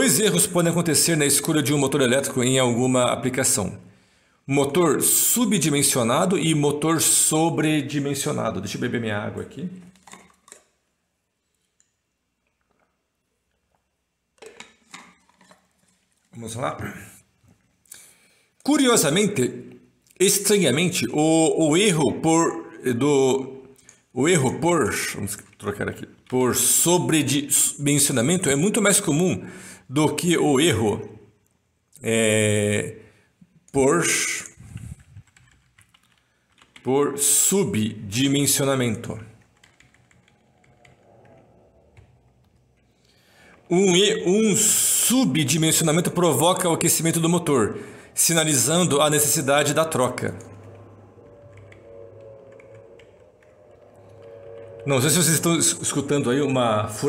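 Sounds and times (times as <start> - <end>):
man speaking: 0.0 - 3.9, 4.5 - 9.9, 16.3 - 17.2, 18.6 - 31.2, 32.0 - 33.1, 33.7 - 34.6, 36.8 - 39.4, 43.7 - 50.9, 54.8 - 57.0
computer keyboard typing: 9.8 - 10.6, 35.0 - 36.9, 38.9 - 42.8, 48.7 - 56.2
water container clinking: 14.4 - 16.4.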